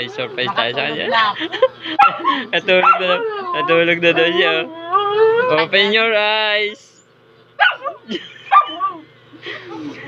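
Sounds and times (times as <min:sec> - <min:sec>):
woman laughing and squealing: 0:08.0 - 0:10.0.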